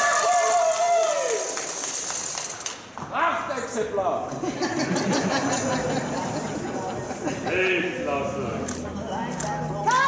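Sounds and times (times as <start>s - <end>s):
spectator cheering: 0.0s - 1.6s.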